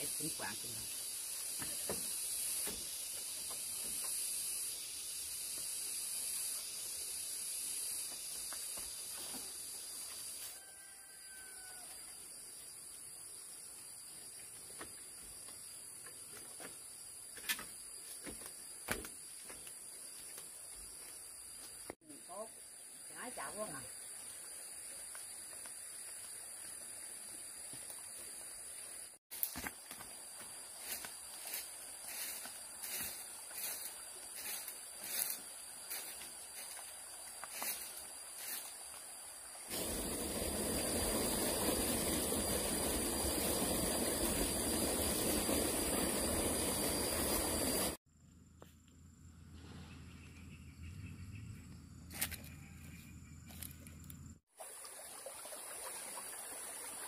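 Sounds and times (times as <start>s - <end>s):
footsteps on dirt path: 8.0s - 10.4s, 24.8s - 38.9s.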